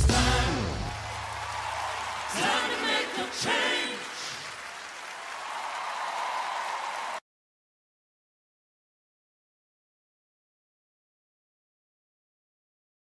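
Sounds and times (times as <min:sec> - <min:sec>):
audience applauding and cheering: 0:00.0 - 0:07.2.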